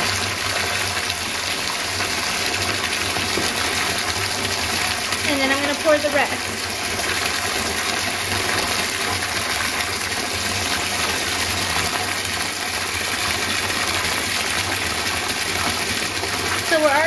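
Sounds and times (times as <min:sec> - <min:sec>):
tap water running into tub: 0:00.0 - 0:17.0.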